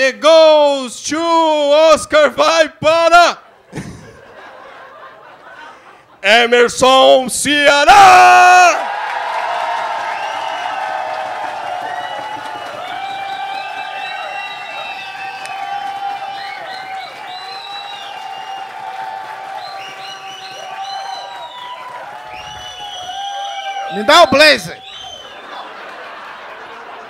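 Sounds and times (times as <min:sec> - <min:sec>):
audience whooping and cheering: 0:07.8 - 0:27.0
audience applauding: 0:08.6 - 0:27.0.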